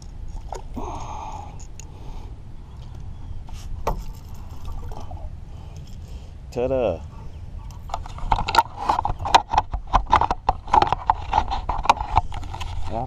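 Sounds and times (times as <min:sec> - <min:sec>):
steady low rumble: 0:00.0 - 0:11.1
water splashing: 0:03.8 - 0:05.3.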